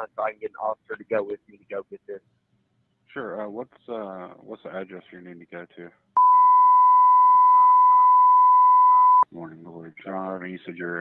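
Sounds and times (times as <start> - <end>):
censor bleep tone: 6.2 - 9.3.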